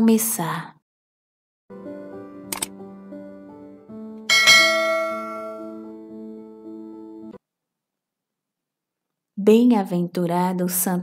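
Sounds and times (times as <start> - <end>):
soft keyboard music: 1.7 - 7.4
bright bell chime: 4.3 - 5.9.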